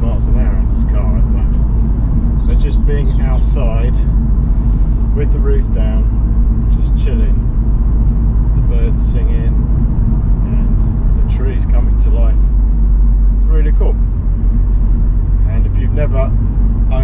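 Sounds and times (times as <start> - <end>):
car engine humming: 0.0 - 17.0
wind and road noise rumble: 0.0 - 17.0.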